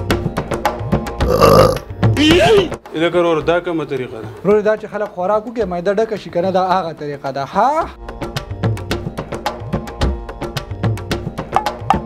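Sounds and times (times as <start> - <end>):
man belching: 1.2 - 2.5.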